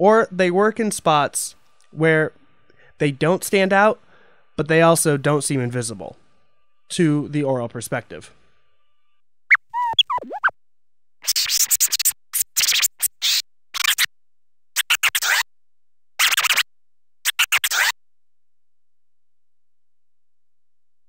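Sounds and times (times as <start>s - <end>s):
turntable scratches: 9.5s - 10.5s, 11.2s - 14.1s, 14.8s - 15.5s, 16.2s - 16.7s, 17.3s - 18.0s.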